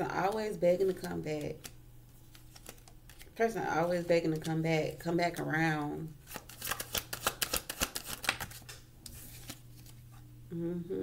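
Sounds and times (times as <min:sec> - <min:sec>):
cards being shuffled: 0:00.2 - 0:05.6, 0:06.2 - 0:10.2.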